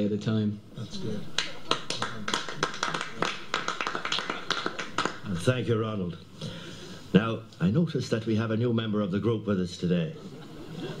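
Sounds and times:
people clapping: 0:01.3 - 0:05.5.

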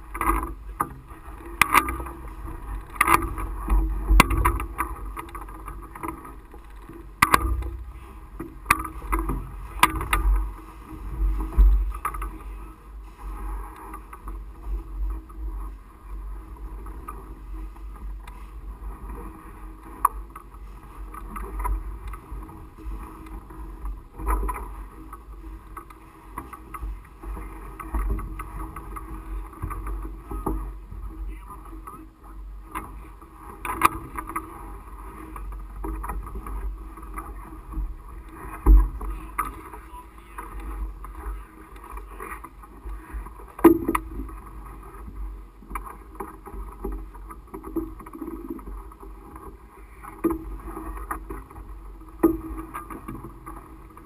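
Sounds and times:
wind buffeting camera: 0:00.0 - 0:54.0.

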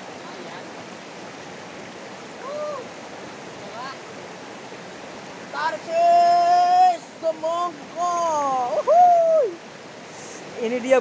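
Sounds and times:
stream rushing over rocks: 0:00.0 - 0:11.0.

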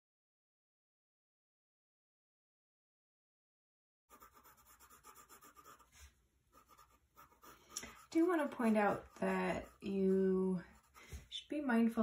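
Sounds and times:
pencil scratching on paper: 0:04.1 - 0:11.4.

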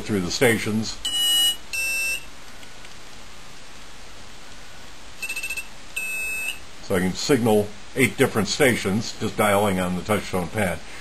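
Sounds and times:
steady hiss: 0:00.0 - 0:11.0
high beeping tone: 0:01.0 - 0:02.3, 0:05.2 - 0:06.6.

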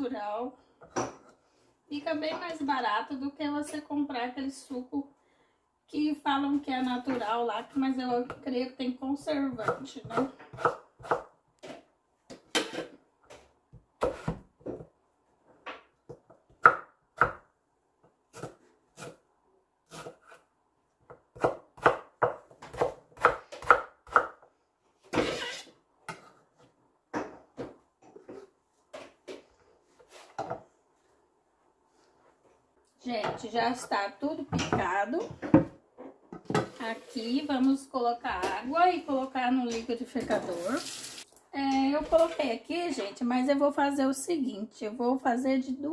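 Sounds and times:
knife chopping on wooden board: 0:09.6 - 0:11.8, 0:21.1 - 0:24.4.

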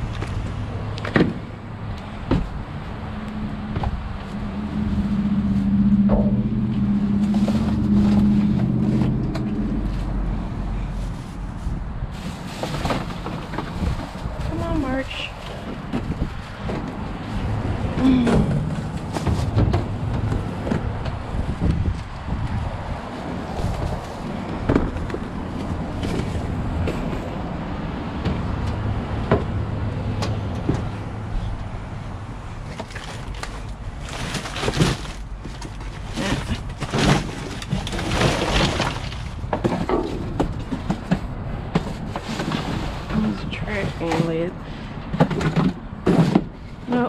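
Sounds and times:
pole knocking and scraping: 0:03.7 - 0:10.2
rustling cardboard and plastic bags: 0:07.0 - 0:22.2, 0:32.6 - 0:47.0.

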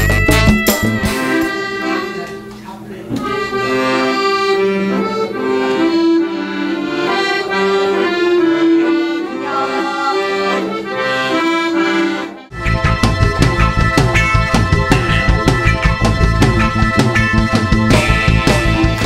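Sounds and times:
piano accordion melody: 0:00.0 - 0:19.0.

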